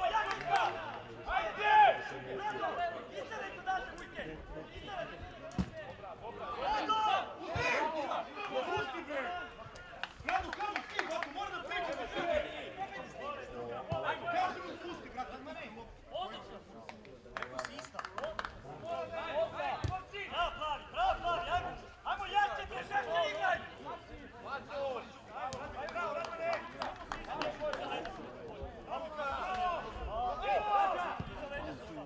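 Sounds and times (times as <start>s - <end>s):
voices calling and talking: 0.0s - 32.0s.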